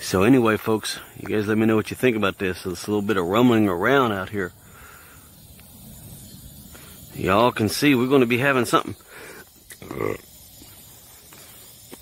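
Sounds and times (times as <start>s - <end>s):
light hiss: 0.0s - 12.0s.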